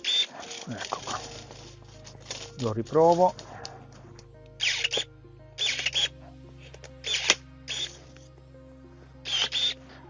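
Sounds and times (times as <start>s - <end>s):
electric pruning shears whirring: 0.0s - 3.8s, 4.6s - 6.1s, 6.8s - 8.2s, 9.3s - 10.0s.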